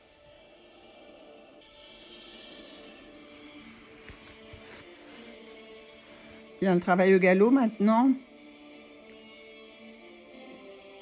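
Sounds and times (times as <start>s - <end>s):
quiet music with held notes: 0.0s - 11.0s.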